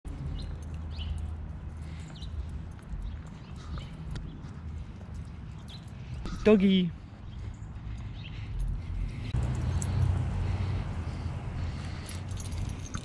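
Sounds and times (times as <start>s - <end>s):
footsteps on pavement: 0.1s - 13.0s.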